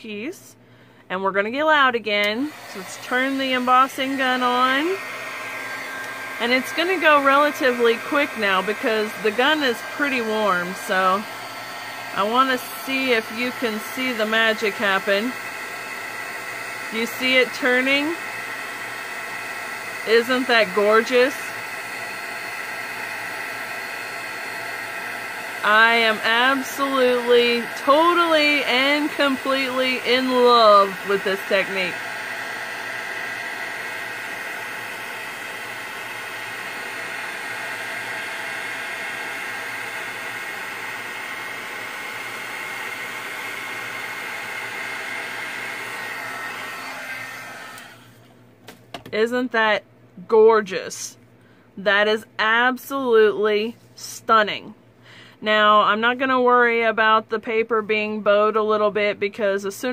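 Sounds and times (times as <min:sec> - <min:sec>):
heat gun running: 0:02.1 - 0:48.2.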